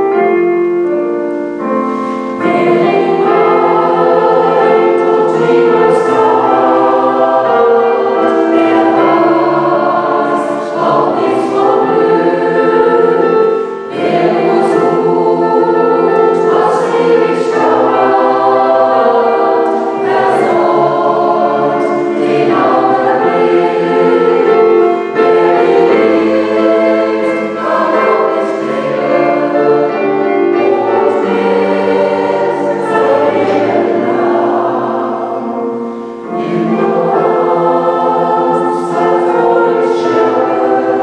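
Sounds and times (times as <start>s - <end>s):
mixed choir singing in harmony: 0.0s - 41.0s
piano: 0.0s - 41.0s.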